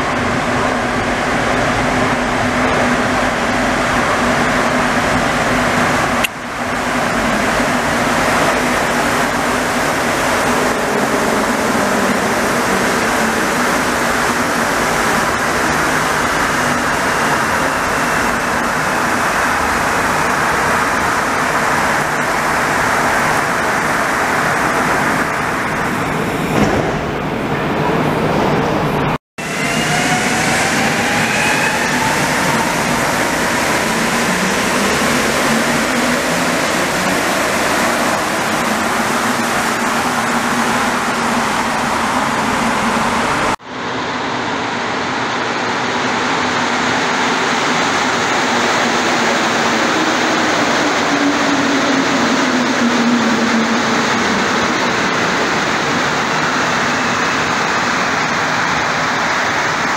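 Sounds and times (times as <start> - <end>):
metro train roar: 0.0 - 59.9
train arriving low falling tone: 0.0 - 59.9.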